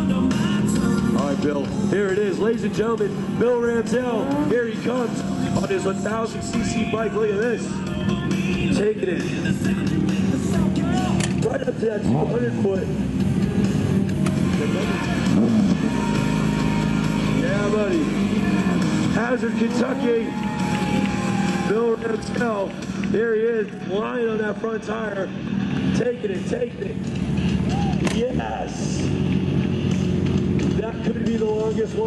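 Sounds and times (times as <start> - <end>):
loud background music: 0.0 - 32.0
motorcycle engine running: 0.0 - 32.0.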